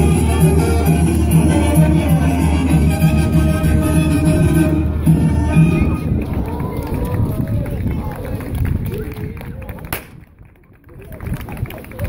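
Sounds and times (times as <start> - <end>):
sharp crack: 9.9 - 10.2.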